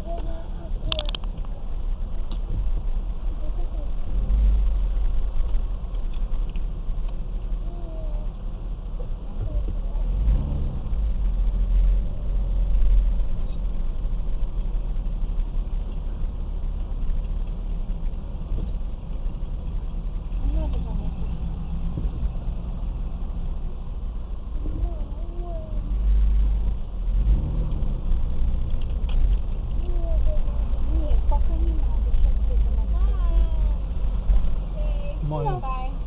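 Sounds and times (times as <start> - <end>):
vehicle engine rumbling in cabin: 0.0 - 36.0.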